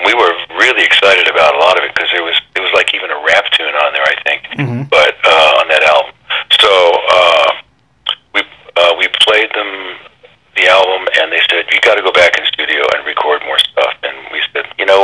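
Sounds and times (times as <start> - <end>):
people talking: 0.0 - 15.0.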